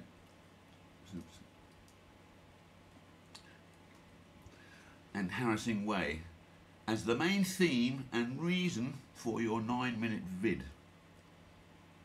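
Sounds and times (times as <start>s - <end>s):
faint keyboard clicks: 0.2s - 2.1s, 2.9s - 4.6s.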